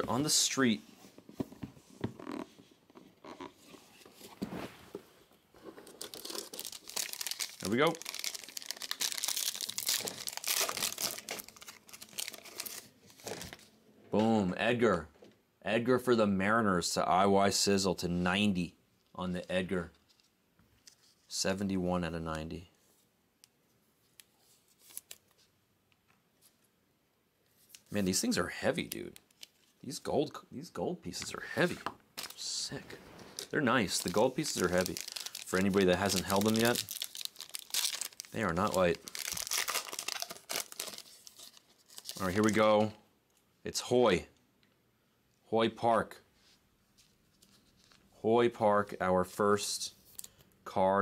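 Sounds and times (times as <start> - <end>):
plastic sleeve rustling: 0.0 - 13.7, 24.4 - 25.5, 31.2 - 42.9.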